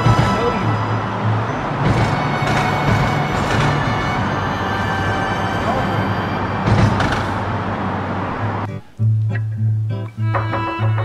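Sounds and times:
vehicle passing: 0.0 - 9.7
freeway traffic roar: 0.0 - 11.0.

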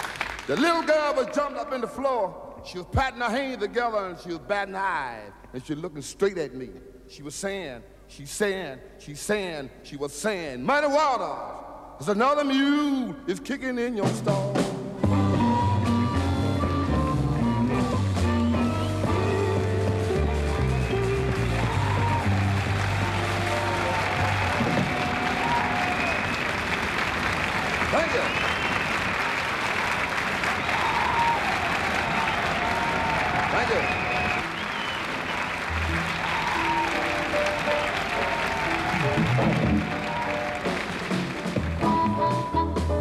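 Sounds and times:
audience applauding: 0.0 - 1.7, 18.6 - 42.3
scattered band notes: 15.0 - 25.4.

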